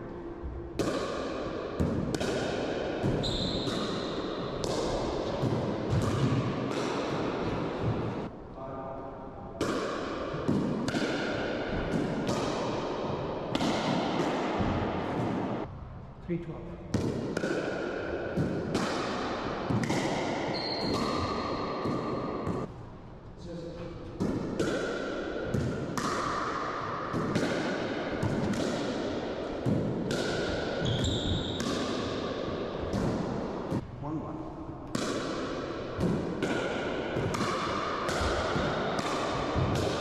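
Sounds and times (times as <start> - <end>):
ball bouncing off floor and walls: 0.8 - 8.3, 9.6 - 15.6, 16.9 - 22.7, 24.2 - 33.8, 34.9 - 40.0
shoe squeaks: 3.2 - 4.0, 20.5 - 21.6, 30.8 - 31.6
paddles hitting plastic ball: 34.9 - 40.0.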